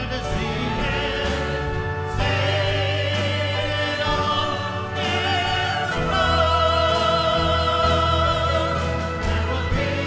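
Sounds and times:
choir singing: 0.0s - 10.0s
orchestral accompaniment: 0.0s - 10.0s.

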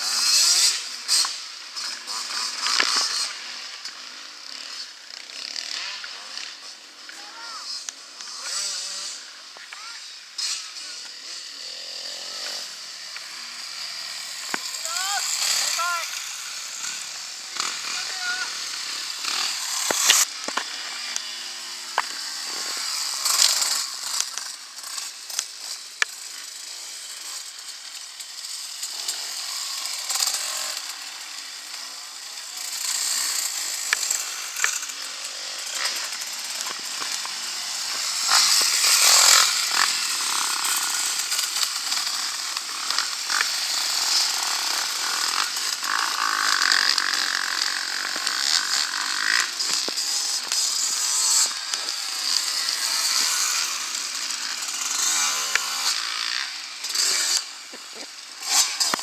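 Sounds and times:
dirt bike engines revving: 0.0s - 59.0s.

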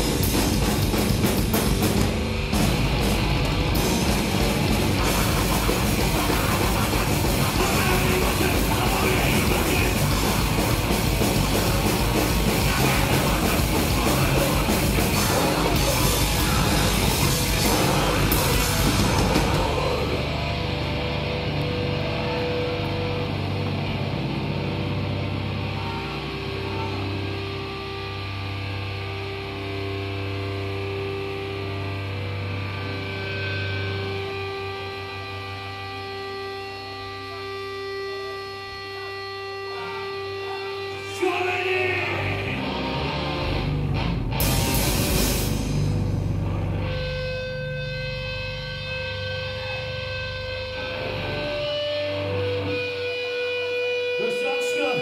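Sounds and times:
distorted grindcore band: 0.0s - 55.0s
droning guitar and bass notes: 0.0s - 55.0s.

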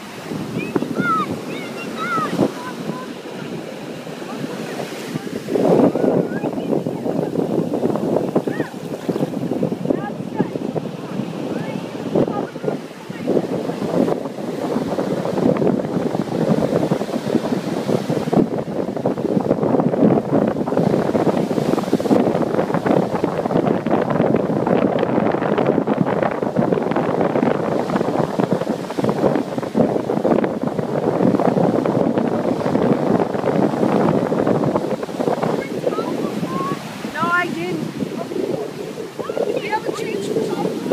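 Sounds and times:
ocean surf breaking: 0.0s - 40.9s
wind buffeting microphone: 0.0s - 40.9s.

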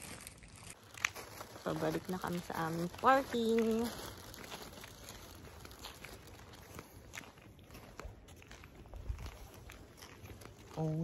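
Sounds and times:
footsteps on paved street: 0.8s - 11.0s.

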